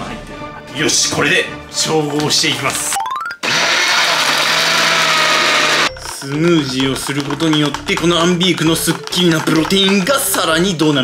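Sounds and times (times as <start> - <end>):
blender running: 3.4 - 5.9.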